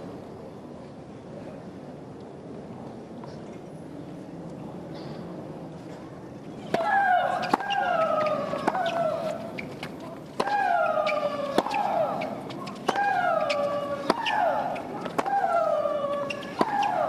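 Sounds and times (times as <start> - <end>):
racket hitting tennis ball: 6.7 - 17.0.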